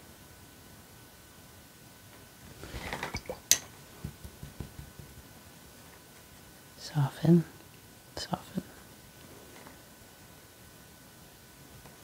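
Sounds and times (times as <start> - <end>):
light taps: 3.2 - 5.3.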